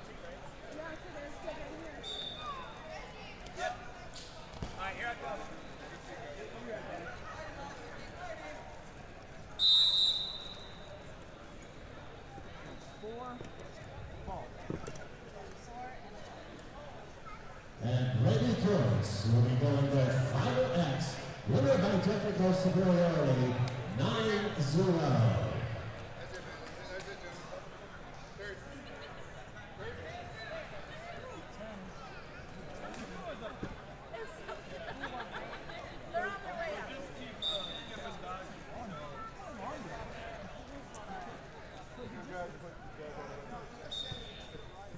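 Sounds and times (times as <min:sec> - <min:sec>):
crowd chatter in large hall: 0:00.0 - 0:44.9.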